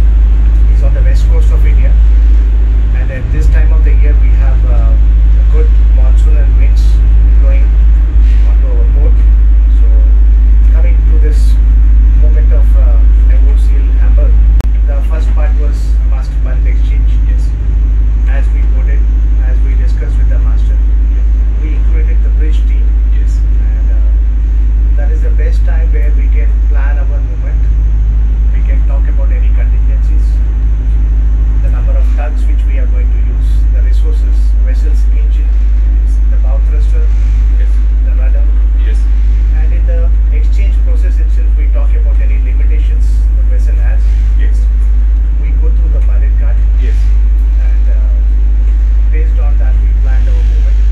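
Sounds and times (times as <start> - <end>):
men talking: 0.0 - 2.2, 2.8 - 30.5, 31.6 - 50.9
boat engine drone: 0.0 - 50.9.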